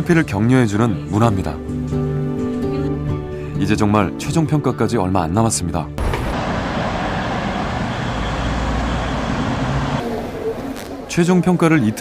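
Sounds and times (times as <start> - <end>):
heavy vehicle rumble: 6.0 - 10.2
road traffic noise: 6.0 - 11.1.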